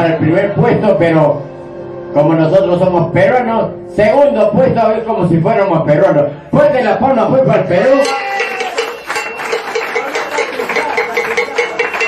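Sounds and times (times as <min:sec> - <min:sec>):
small group clapping: 0:08.1 - 0:12.0.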